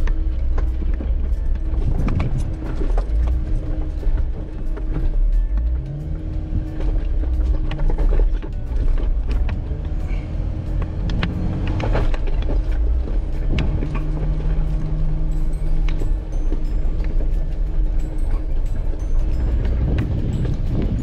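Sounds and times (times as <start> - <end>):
engine and tyres rumbling: 0.0 - 21.0.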